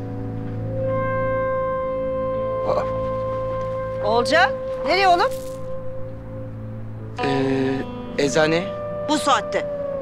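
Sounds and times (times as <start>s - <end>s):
sustained score music: 0.0s - 10.0s.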